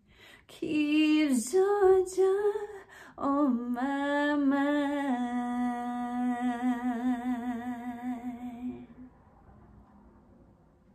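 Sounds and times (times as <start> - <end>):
woman singing long note: 0.6 - 9.0.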